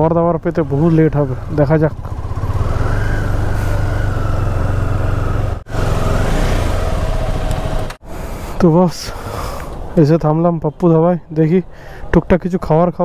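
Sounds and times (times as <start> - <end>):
motorcycle engine running at low revs: 0.8 - 8.0.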